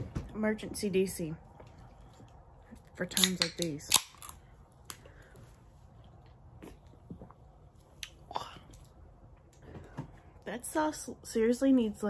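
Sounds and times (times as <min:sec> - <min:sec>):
quiet chewing: 0:04.2 - 0:09.6.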